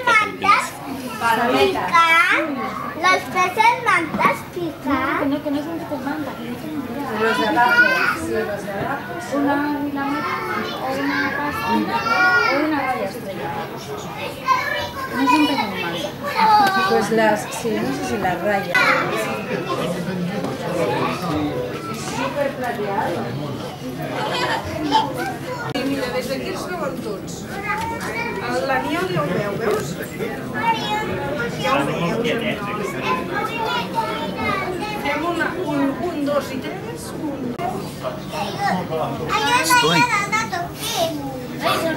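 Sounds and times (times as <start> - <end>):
children chattering and calling out: 0.0 - 41.9
people talking: 0.0 - 41.9.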